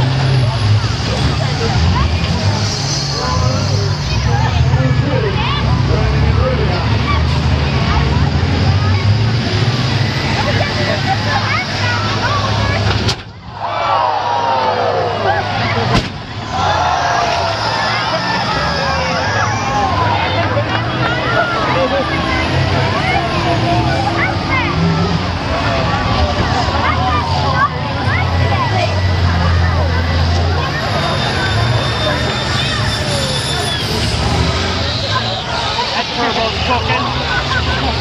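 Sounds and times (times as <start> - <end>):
bus engines rumbling: 0.0 - 38.0
crowd shouting: 0.0 - 38.0.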